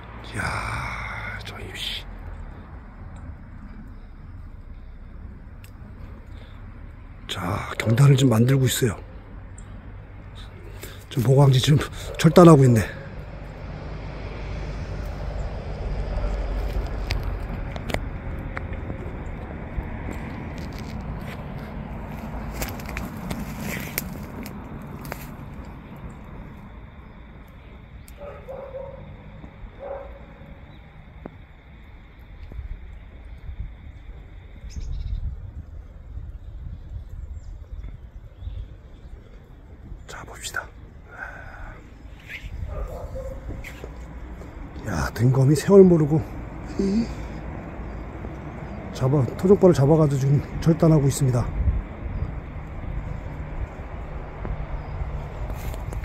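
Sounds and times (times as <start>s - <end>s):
steady low rumble: 0.0s - 56.0s.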